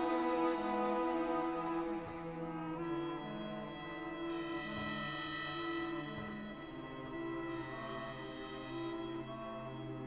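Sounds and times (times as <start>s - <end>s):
sustained orchestral strings: 0.0s - 4.7s
harmonica playing held notes: 2.8s - 10.0s.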